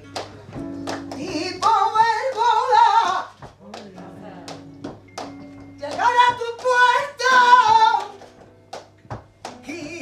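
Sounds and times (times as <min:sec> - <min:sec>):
woman singing flamenco: 0:00.0 - 0:10.0.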